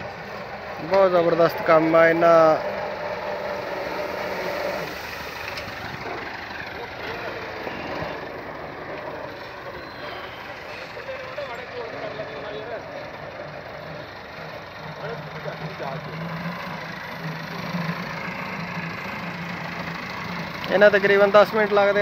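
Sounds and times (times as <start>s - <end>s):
tractor diesel engine running: 0.0s - 22.0s.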